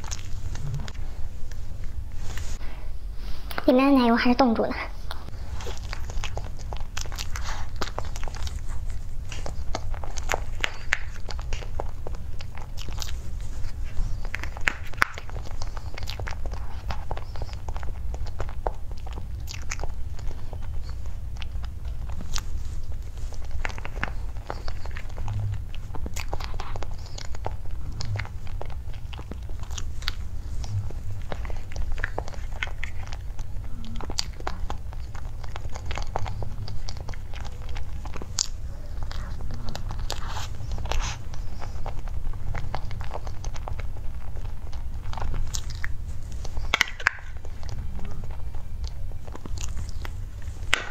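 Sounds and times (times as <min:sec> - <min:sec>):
mouth chewing wet smacks: 0:00.0 - 0:02.0, 0:04.9 - 0:50.9
steady low hum: 0:00.0 - 0:50.9.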